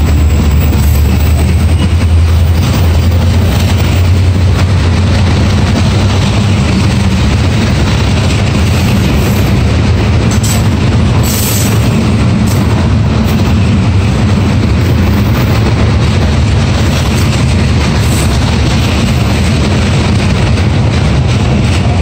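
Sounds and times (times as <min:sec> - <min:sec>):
freight train wheels rumbling on rails: 0:00.0 - 0:22.0.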